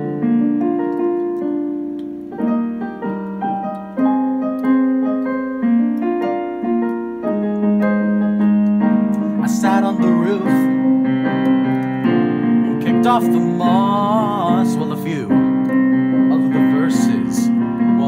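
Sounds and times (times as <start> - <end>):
keyboard piano chords: 0.0 - 18.0.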